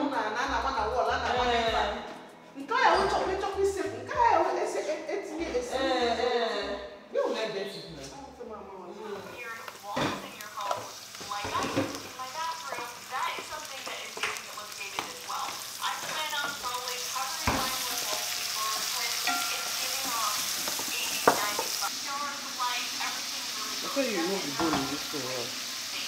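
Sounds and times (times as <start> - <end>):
onions frying in a pan: 9.0 - 26.0.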